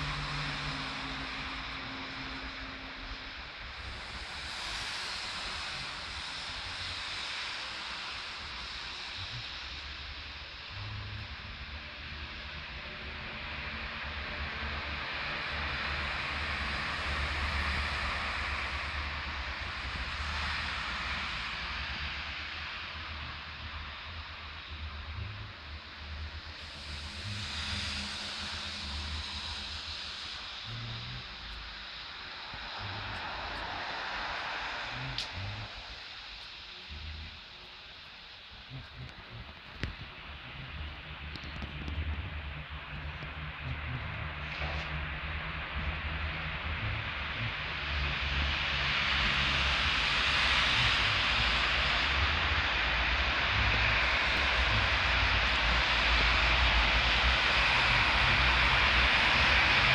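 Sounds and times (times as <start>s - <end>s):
wind rumble on microphone: 0.0s - 59.9s
vehicles passing: 21.1s - 37.9s, 38.6s - 59.9s.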